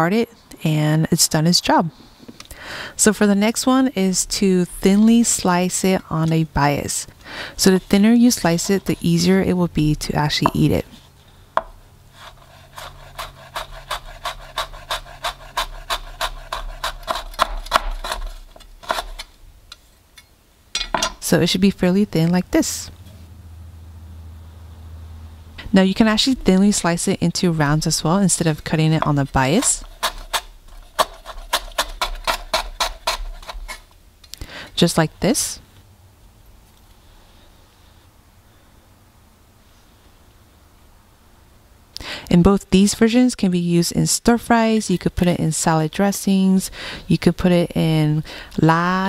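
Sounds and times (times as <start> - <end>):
woman speaking: 0.0 - 2.0, 3.0 - 11.0, 21.2 - 23.0, 25.6 - 29.8, 34.8 - 35.6, 42.3 - 49.0
knife slicing lemongrass: 12.2 - 19.3, 29.0 - 33.8.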